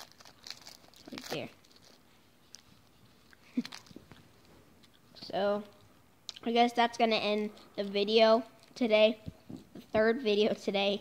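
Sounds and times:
candy wrapper crinkling: 0.0s - 4.2s.

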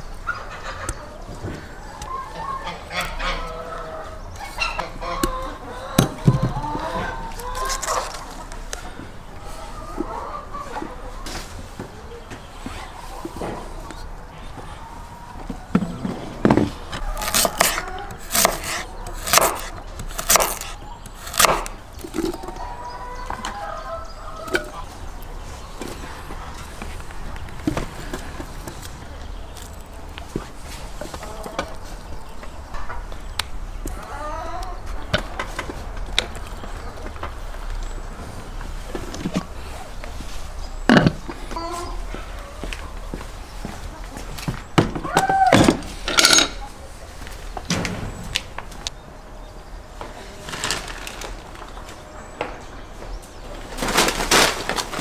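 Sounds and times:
bird calls: 0.0s - 35.6s, 36.2s - 45.6s
knife chopping on wooden board: 17.2s - 21.7s.

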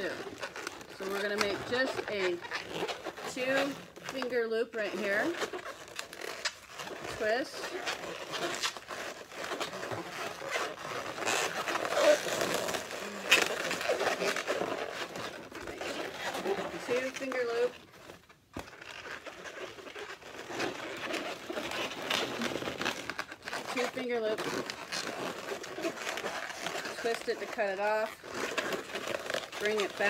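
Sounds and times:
balloons rubbing and squeaking: 0.0s - 30.0s
balloon squeals sliding in pitch: 5.0s - 17.8s.

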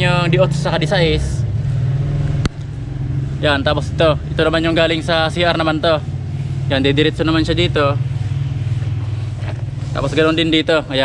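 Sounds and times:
motor engine running: 0.0s - 11.0s.

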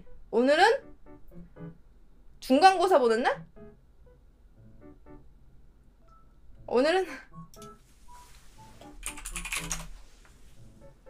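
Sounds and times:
faint background music: 0.0s - 11.0s
computer keyboard typing: 8.8s - 10.0s.

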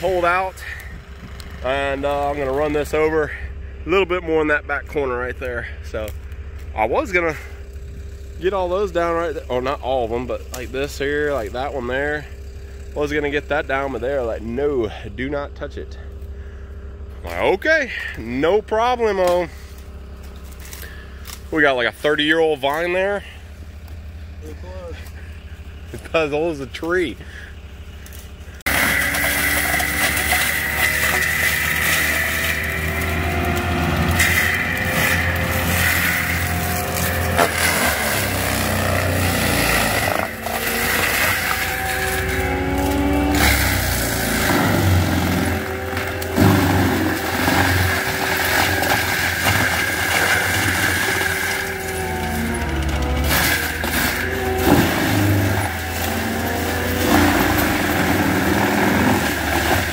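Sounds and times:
diesel engine running hard: 0.0s - 59.9s
mulcher grinding brush: 0.0s - 59.9s.

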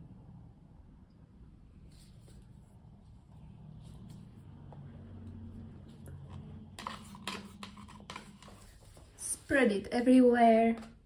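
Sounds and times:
faint low hum: 0.0s - 11.0s
plastic cup clicks and knocks: 6.3s - 8.6s.

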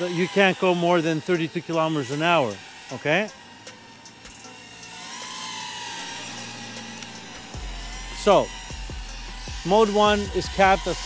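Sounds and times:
electric motor whine: 0.0s - 11.0s.

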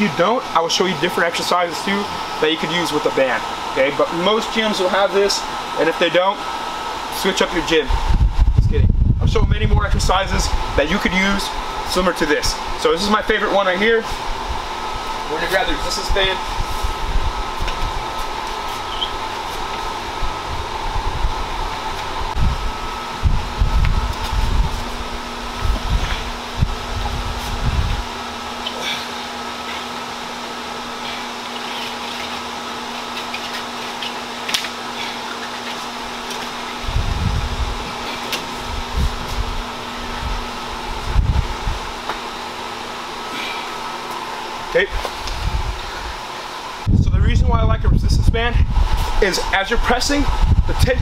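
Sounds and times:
mechanical hum with faint whine: 0.0s - 51.0s
low rumbling: 7.9s - 10.8s, 14.2s - 32.7s, 36.0s - 42.0s.

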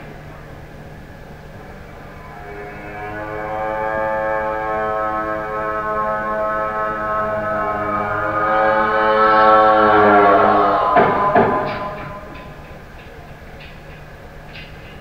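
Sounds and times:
sustained electric guitar note: 1.4s - 13.0s.

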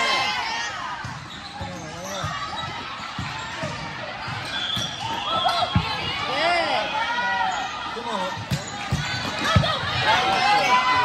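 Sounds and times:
volleyball hits: 8.4s - 10.5s.

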